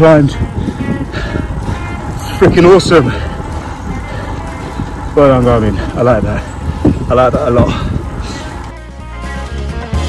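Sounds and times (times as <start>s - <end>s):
wind and road noise on microphone: 0.0s - 10.0s.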